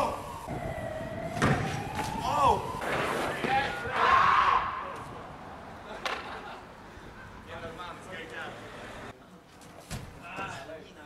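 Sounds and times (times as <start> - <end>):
bike landing thud: 1.3 - 2.1.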